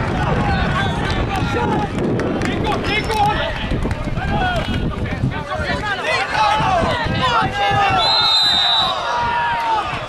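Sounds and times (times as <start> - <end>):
voices calling and shouting: 0.0 - 10.0.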